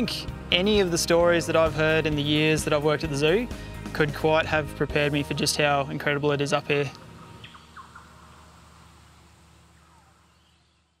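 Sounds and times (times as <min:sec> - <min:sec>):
faint hiss of bush ambience: 0:06.5 - 0:11.0
short bird chirps: 0:07.4 - 0:08.5
faint falling bird call: 0:07.4 - 0:11.0.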